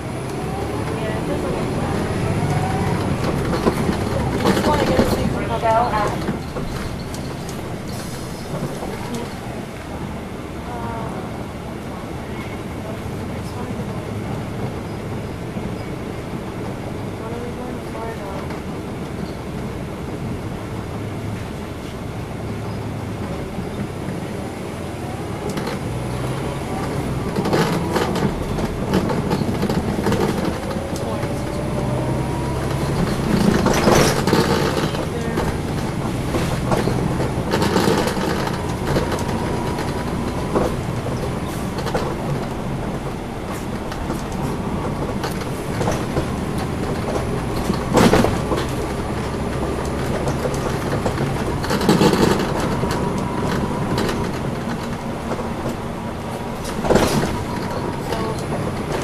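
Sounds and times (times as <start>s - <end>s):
bus diesel engine hum: 0.0s - 59.0s
faint engine whine: 0.0s - 59.0s
road rumble: 0.0s - 59.0s
knocks and rattles from bumps: 0.3s - 9.5s, 25.4s - 59.0s.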